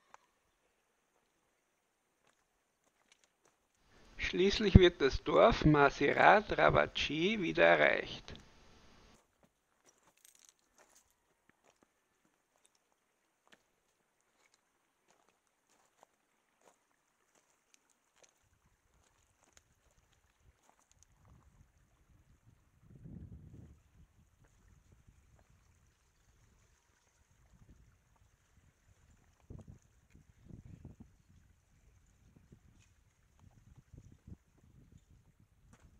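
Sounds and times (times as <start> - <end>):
wind rumble on microphone: 20.4 - 35.9.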